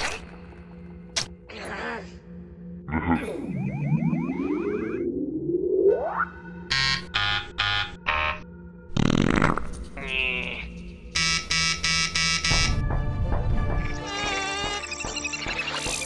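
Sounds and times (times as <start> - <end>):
warbling tone: 3.3 - 6.5
cartoon music bed: 5.9 - 8.4, 13.8 - 16.0.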